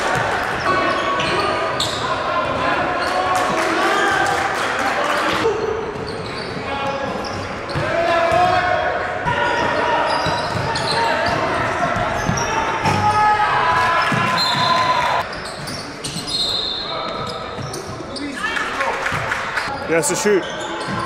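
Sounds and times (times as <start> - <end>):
players' indistinct voices and shouts: 0.0 - 21.0.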